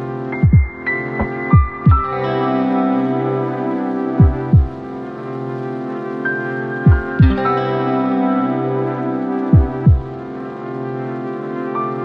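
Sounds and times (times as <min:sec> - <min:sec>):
mellow chords: 0:00.0 - 0:12.0
kick drum hits: 0:00.4 - 0:02.1, 0:04.2 - 0:04.8, 0:06.9 - 0:07.4, 0:09.6 - 0:10.1.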